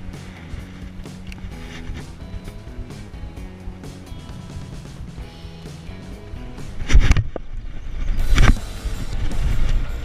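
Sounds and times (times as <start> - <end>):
low rumbling: 0.0 - 10.0.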